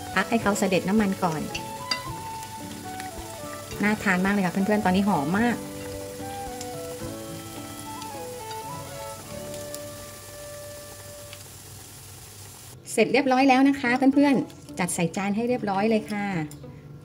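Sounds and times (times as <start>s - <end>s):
soft background music: 0.0s - 11.4s, 13.0s - 17.0s
fish cakes sizzling in oil: 0.0s - 12.8s.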